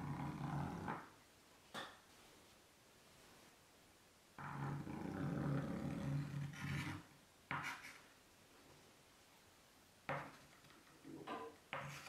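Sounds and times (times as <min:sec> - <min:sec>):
chalk chattering on a blackboard: 0:06.6 - 0:08.2, 0:11.7 - 0:12.0.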